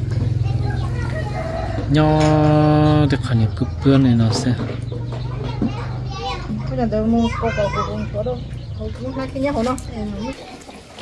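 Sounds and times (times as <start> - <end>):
children's voices: 0.0 - 11.0
people talking: 0.2 - 10.6.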